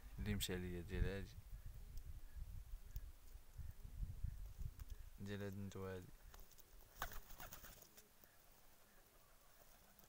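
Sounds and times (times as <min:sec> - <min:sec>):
pigeons cooing: 0:06.3 - 0:10.0.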